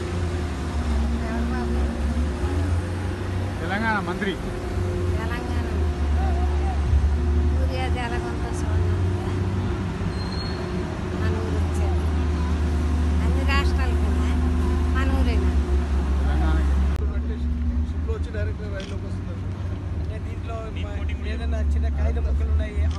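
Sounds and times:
voices talking: 0:00.0 - 0:22.9.

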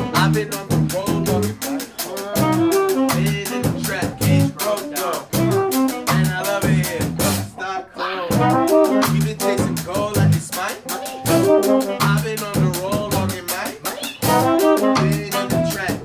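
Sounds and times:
repeating bass line: 0:00.0 - 0:01.8, 0:02.4 - 0:04.6, 0:05.2 - 0:07.6, 0:08.3 - 0:13.5, 0:14.2 - 0:16.0
saxophone: 0:00.0 - 0:07.3, 0:08.1 - 0:13.3, 0:13.9 - 0:16.0
drum kit beat: 0:00.0 - 0:07.6, 0:08.3 - 0:16.0.

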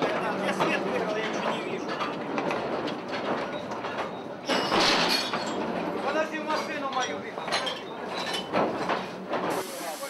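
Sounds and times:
mine cars clattering on rails: 0:00.0 - 0:09.6.

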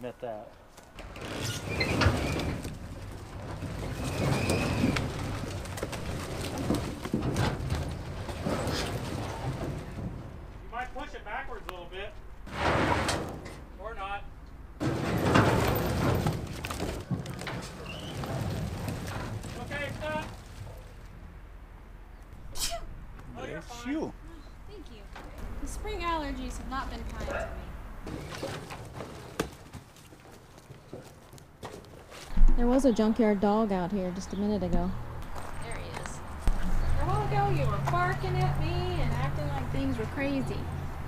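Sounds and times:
logs clattering onto woodpile: 0:00.8 - 0:10.6, 0:14.8 - 0:21.1, 0:28.0 - 0:32.6.

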